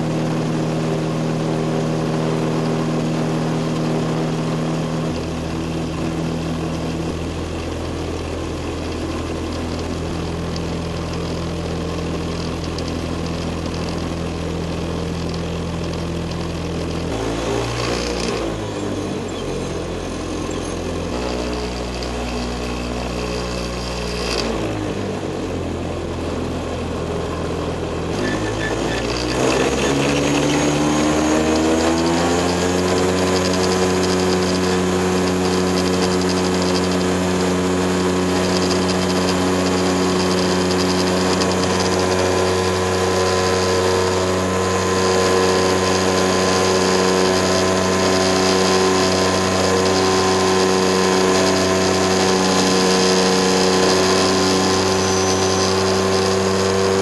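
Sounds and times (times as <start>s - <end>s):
ultralight aircraft engine taxiing: 0.0s - 57.0s.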